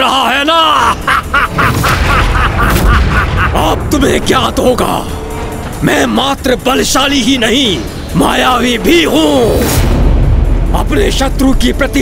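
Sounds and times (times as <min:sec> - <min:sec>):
man laughing villainously: 0:00.5 - 0:03.8
deep rumbling score: 0:00.8 - 0:12.0.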